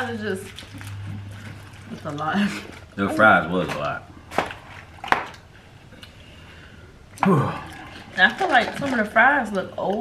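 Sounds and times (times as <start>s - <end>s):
quiet chewing: 0.4s - 6.5s.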